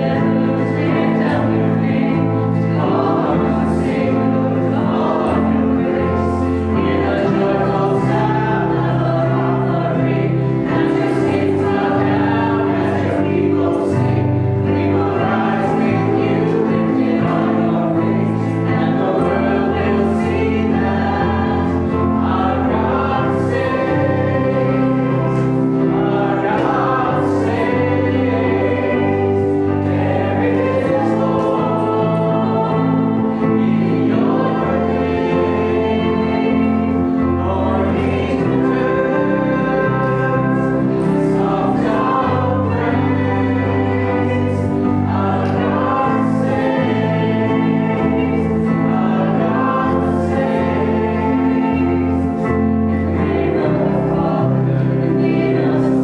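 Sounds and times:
congregation singing a hymn: 0.0 - 56.0
guitar: 0.0 - 56.0
keyboard: 0.0 - 56.0.

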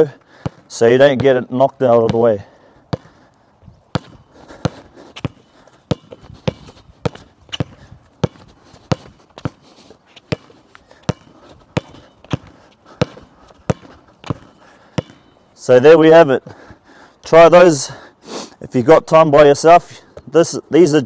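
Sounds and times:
basketball bouncing on hard court: 0.4 - 3.2, 3.9 - 9.6, 10.3 - 15.4.

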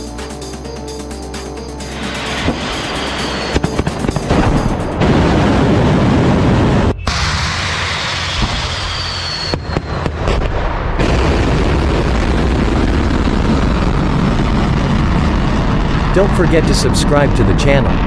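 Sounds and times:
music: 0.0 - 5.8
rocket motor roar: 1.8 - 10.4, 11.0 - 18.0
rushing noise with high whistle: 1.9 - 4.1, 6.7 - 10.2.

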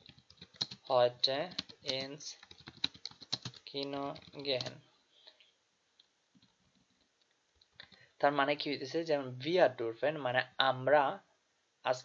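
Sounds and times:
computer keyboard typing: 0.0 - 4.8, 7.6 - 8.0.

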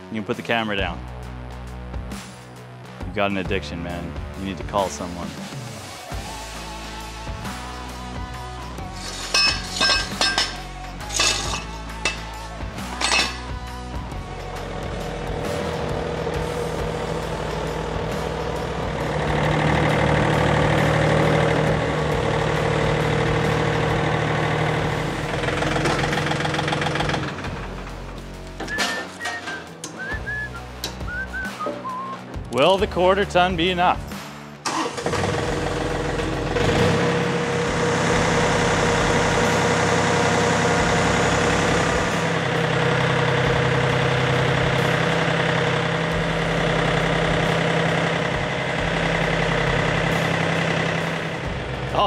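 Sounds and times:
tractor engine running: 8.7 - 32.6, 34.6 - 52.0.

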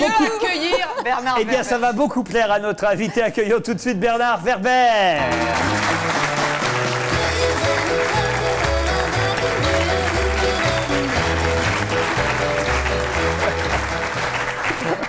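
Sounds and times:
audience applauding: 5.2 - 15.0
upbeat music with bass line: 5.2 - 15.0.

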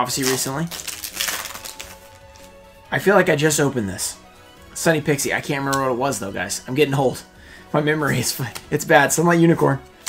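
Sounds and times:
foil wrapper crinkling and tearing: 0.0 - 2.6
faint background music: 0.0 - 10.0.

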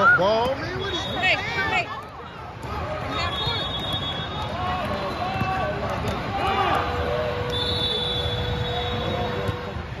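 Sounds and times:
faint high whistle: 3.1 - 4.4, 7.5 - 9.4.

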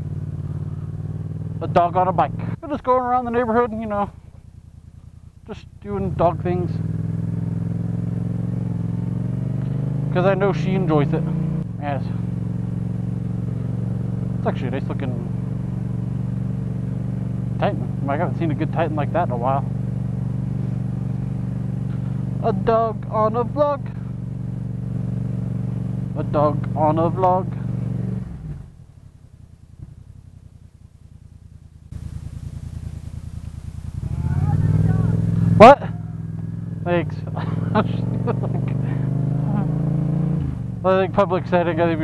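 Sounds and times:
motorcycle engine running: 0.0 - 42.0.

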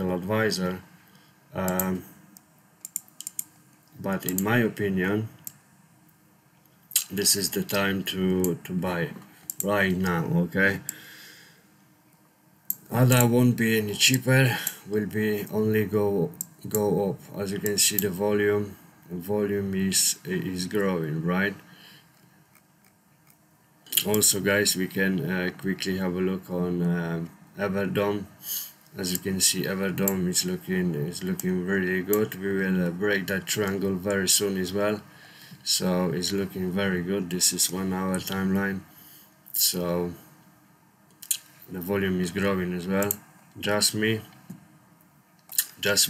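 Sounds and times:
computer mouse clicks: 1.7 - 3.5, 4.2 - 4.5
keyboard and mouse clicks: 2.8 - 3.5.

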